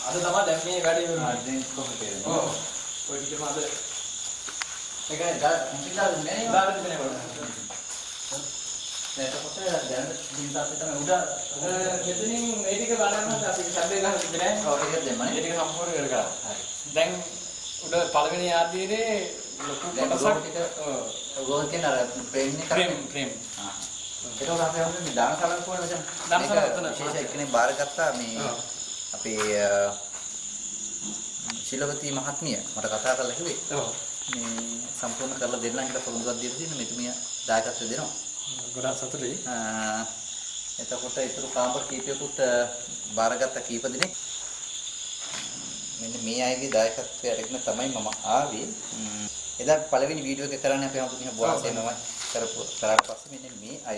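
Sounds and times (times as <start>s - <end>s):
men talking: 0.0s - 4.0s, 5.0s - 30.2s, 31.4s - 40.2s, 40.8s - 44.2s, 46.0s - 53.9s
crickets chirring: 0.0s - 53.9s.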